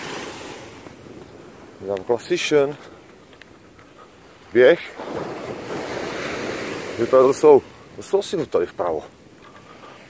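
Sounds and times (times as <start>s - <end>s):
small waves washing on shore: 0.0s - 10.0s
wind: 0.0s - 10.0s.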